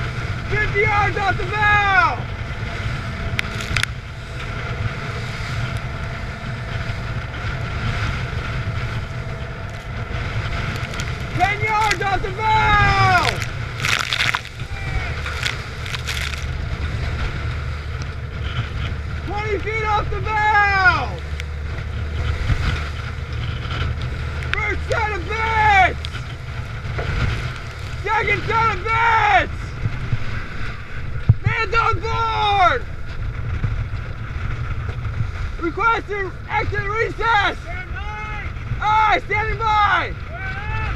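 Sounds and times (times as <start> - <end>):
boat engine rumble: 0.0 - 40.9
wind on microphone: 0.0 - 40.9
person shouting: 11.3 - 13.5, 14.6 - 15.5, 40.3 - 40.9.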